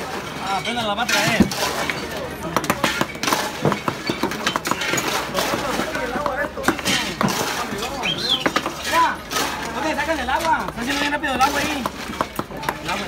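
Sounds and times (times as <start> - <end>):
bar chatter: 0.0 - 13.0.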